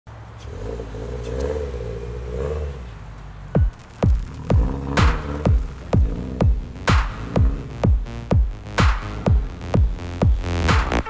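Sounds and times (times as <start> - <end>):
car engine running: 2.8 - 11.0
deep bass hit falling pitch: 3.6 - 11.0.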